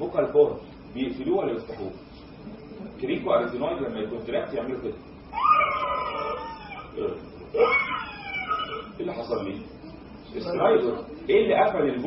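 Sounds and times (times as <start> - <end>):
man imitating high-pitched squeals: 5.3 - 9.0.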